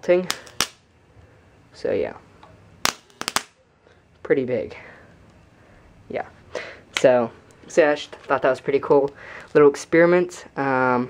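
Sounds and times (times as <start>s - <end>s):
electric arc snapping: 0.2s - 0.9s, 2.8s - 3.6s.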